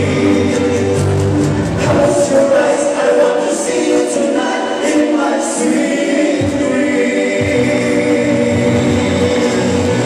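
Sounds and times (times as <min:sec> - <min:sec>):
backing music bass: 0:00.0 - 0:02.5, 0:06.4 - 0:10.0
male vocal trio singing in harmony: 0:00.0 - 0:10.0.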